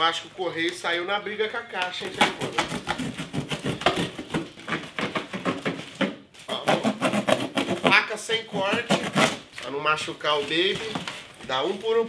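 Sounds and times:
cardboard tearing: 0:02.0 - 0:11.8
plastic wrapping crinkling: 0:08.6 - 0:12.0.

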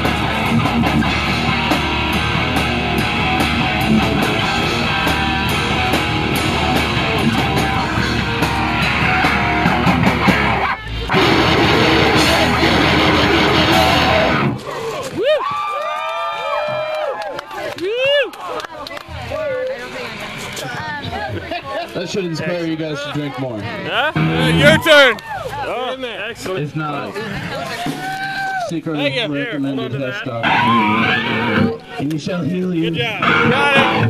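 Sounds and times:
heavy rock band playing: 0:00.0 - 0:14.6, 0:24.1 - 0:25.0, 0:30.4 - 0:31.8, 0:33.2 - 0:34.0
sliding pitched notes: 0:00.0 - 0:14.6, 0:24.2 - 0:24.9.

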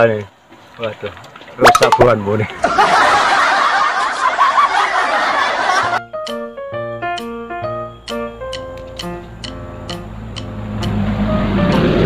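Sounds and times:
crowd laughing: 0:02.4 - 0:06.0.

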